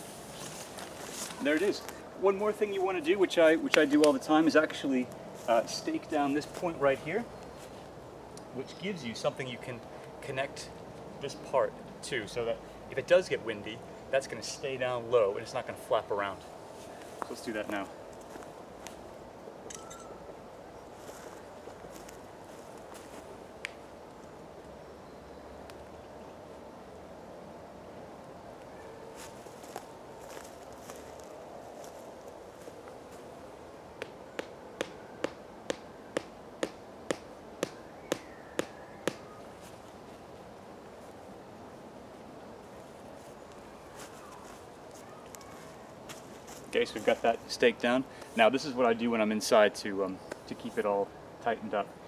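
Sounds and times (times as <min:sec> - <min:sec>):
tent peg being hammered: 0:34.0 - 0:39.3.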